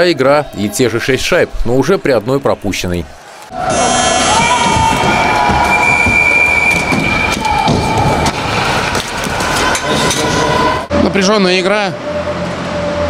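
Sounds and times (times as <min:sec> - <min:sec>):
ice arena crowd din: 0:00.0 - 0:11.1.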